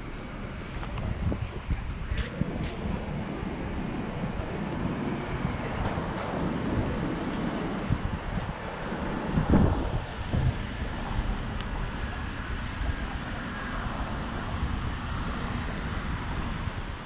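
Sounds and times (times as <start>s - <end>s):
low rumble of traffic: 0.0s - 17.0s
wind buffeting microphone: 0.0s - 17.0s.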